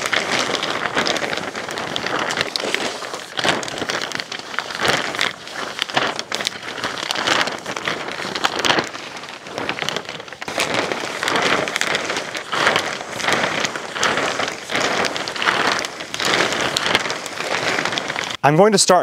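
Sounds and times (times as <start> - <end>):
plastic sheet rustling and crinkling: 0.0 - 18.4.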